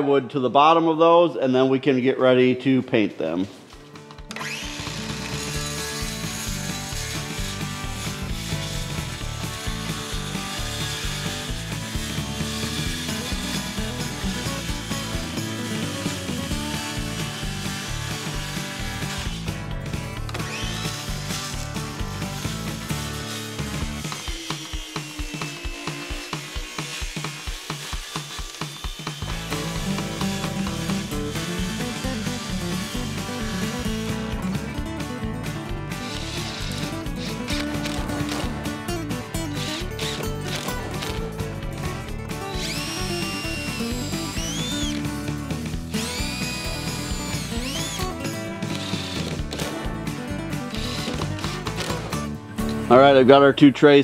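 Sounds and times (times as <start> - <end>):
background music with steady beat: 3.6 - 53.6
circular saw cutting plywood: 4.3 - 52.3.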